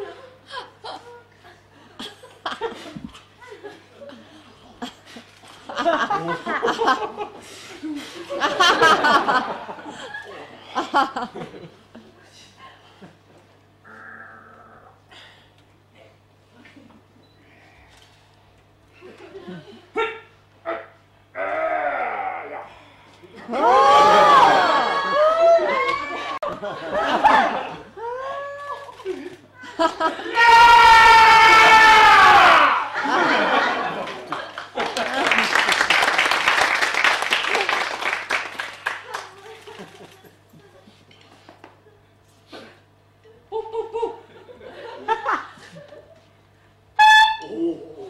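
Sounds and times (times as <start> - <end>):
audience laughing: 0.0 - 12.0, 23.4 - 30.4, 32.8 - 35.8, 43.5 - 46.3.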